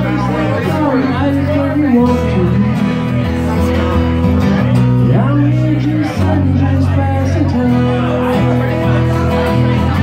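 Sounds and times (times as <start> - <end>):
acoustic guitars playing: 0.0 - 10.0
man singing into a microphone: 0.0 - 10.0.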